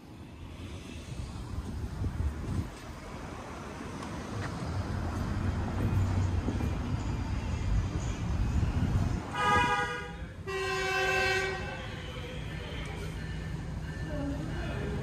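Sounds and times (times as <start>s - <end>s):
train horn blasts: 9.3s - 12.2s.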